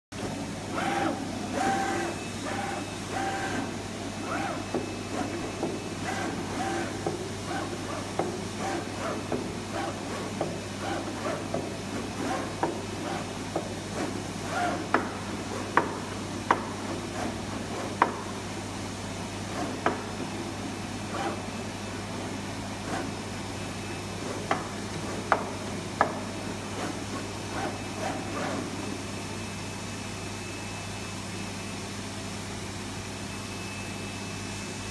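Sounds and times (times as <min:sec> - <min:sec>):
plotter carriage motors whirring: 0:00.2 - 0:31.4.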